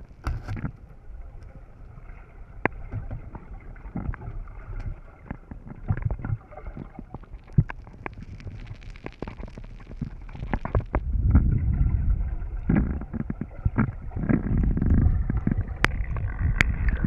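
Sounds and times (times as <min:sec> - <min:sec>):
muffled underwater rumble: 0:00.0 - 0:17.0.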